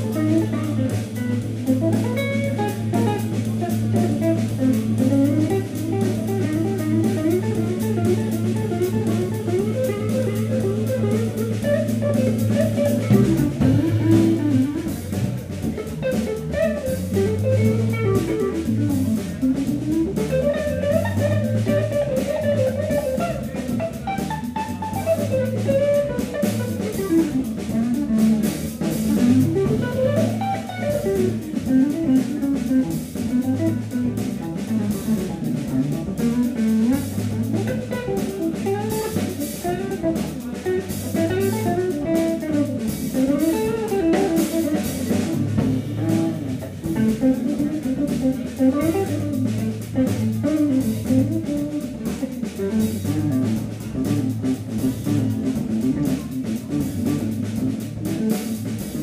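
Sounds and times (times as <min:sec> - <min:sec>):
drum kit: 0:00.0 - 0:59.0
electric guitar melody: 0:00.0 - 0:59.0.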